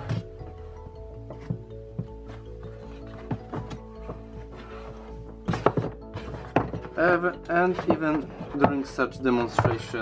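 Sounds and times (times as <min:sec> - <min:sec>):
background music with held notes: 0:00.0 - 0:10.0
cable reel knocks and thuds: 0:03.1 - 0:10.0.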